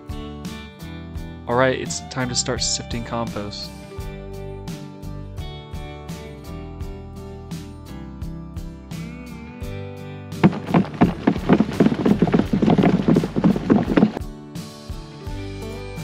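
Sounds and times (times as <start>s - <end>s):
background music: 0.0s - 16.0s
soil rattling on wire mesh screen: 10.4s - 14.2s.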